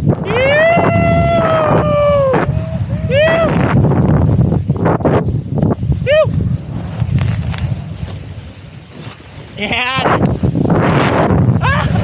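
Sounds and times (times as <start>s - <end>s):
wind rumbling on microphone: 0.0s - 12.0s
skis hissing over snow: 0.4s - 12.0s.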